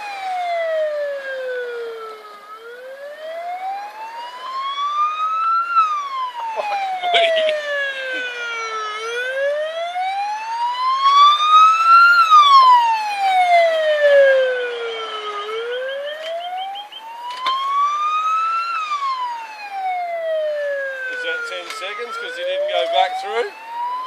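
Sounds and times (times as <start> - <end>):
ambulance siren wailing: 0.0 - 24.0.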